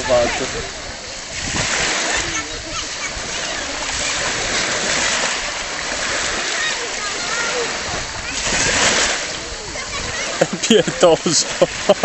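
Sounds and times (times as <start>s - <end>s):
faint indistinct voices: 0.0s - 11.8s
water lapping in shallows: 0.0s - 12.0s.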